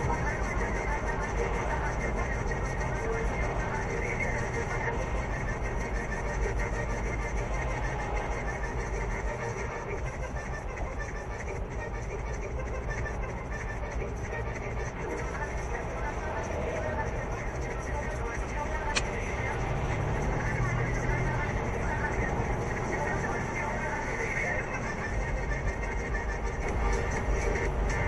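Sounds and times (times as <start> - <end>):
car road and tyre noise: 0.0 - 28.0.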